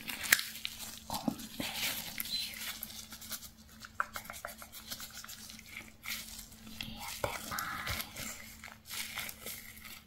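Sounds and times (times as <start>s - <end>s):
glove rustling and crinkling: 0.0s - 10.0s
soft whispering: 1.0s - 2.9s, 6.6s - 8.6s.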